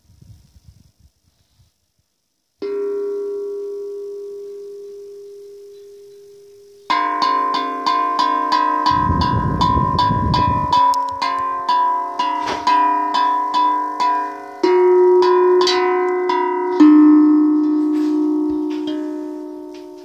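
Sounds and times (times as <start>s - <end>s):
handpan notes: 2.6s - 20.0s
low rumble: 8.9s - 10.9s.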